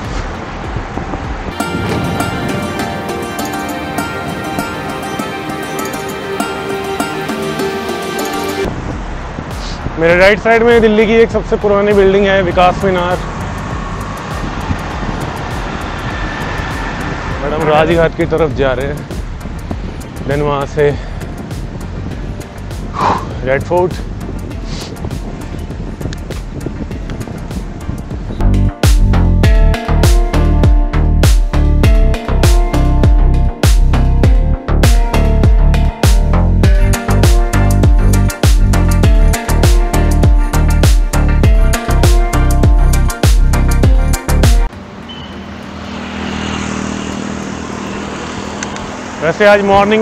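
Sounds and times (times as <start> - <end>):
wind rushing over microphone: 0.0 - 5.0, 8.6 - 44.7
background music: 0.0 - 45.0
road traffic: 0.0 - 50.0.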